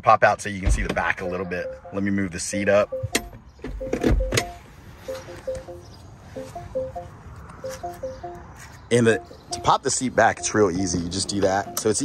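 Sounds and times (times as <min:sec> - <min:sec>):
simple tune of short notes: 0:03.8 - 0:12.0.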